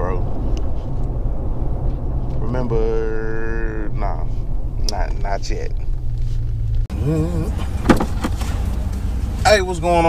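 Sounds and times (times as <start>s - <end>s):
vehicle engine and tyre rumble: 0.0s - 10.0s.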